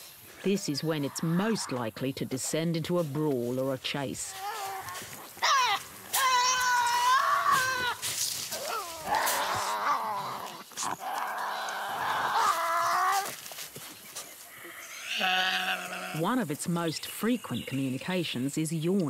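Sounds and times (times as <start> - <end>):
animals screeching: 4.4 - 13.4, 14.5 - 16.2.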